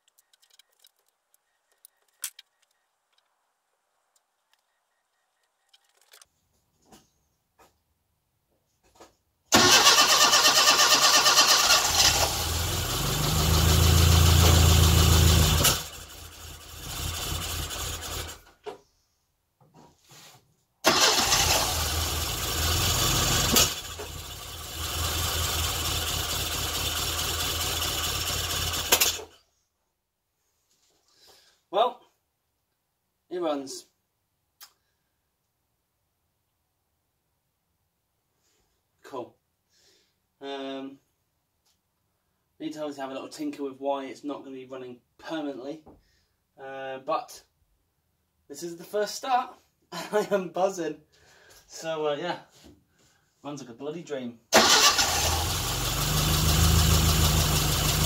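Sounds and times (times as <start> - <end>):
car engine starting and revving: 9.5 - 18.5, 20.9 - 29.3, 54.6 - 58.0.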